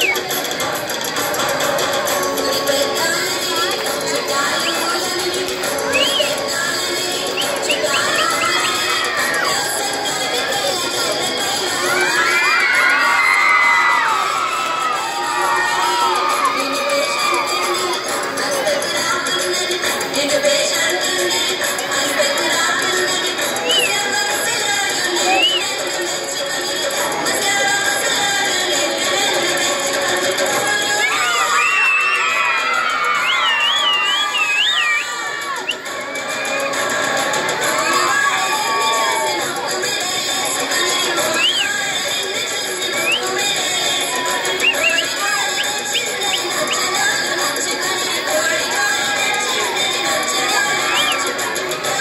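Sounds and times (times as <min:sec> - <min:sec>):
children shouting and cheering: 0:00.0 - 0:52.0.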